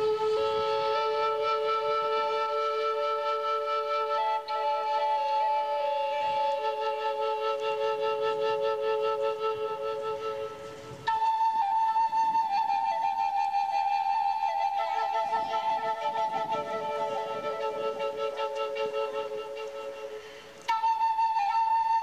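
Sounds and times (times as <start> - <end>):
flute playing slow melody: 0.0 - 22.0.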